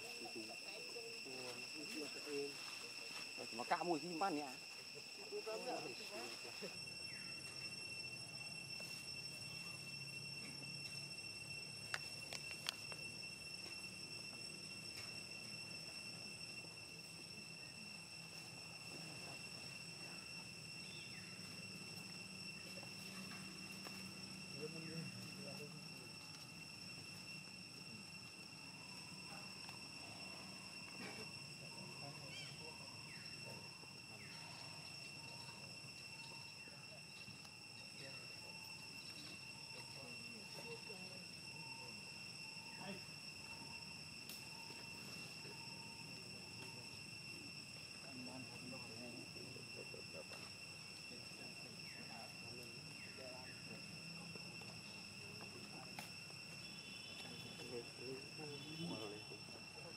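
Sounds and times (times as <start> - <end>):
high-pitched insect drone: 0.0 - 59.9.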